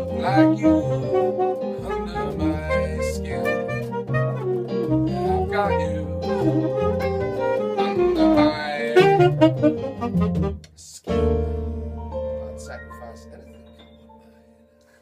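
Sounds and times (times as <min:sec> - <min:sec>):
saxophone jazz solo: 0:00.0 - 0:12.4
bass notes: 0:00.0 - 0:14.1
electric keyboard chords: 0:00.0 - 0:15.0.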